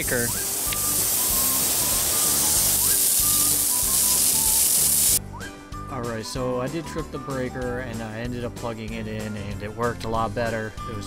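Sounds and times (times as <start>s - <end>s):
sprinkler head hissing: 0.0s - 5.2s
background music: 0.0s - 11.0s.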